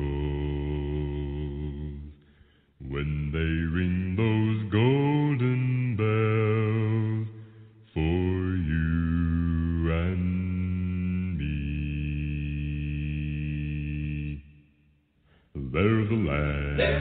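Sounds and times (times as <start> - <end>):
man singing long held notes: 0.0 - 2.2, 15.6 - 17.0.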